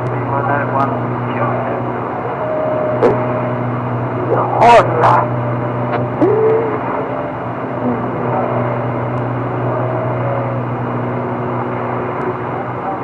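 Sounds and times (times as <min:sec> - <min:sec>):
low hum and hiss: 0:00.0 - 0:13.0
faint wavering tones: 0:00.2 - 0:13.0.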